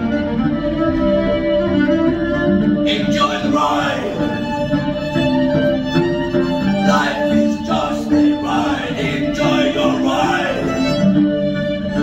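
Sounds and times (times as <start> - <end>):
fiddle playing: 0.0 - 12.0.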